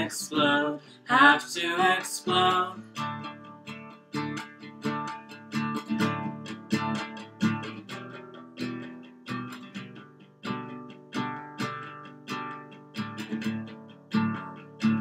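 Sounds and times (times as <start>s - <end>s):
acoustic guitar strumming chords: 0.0s - 15.0s.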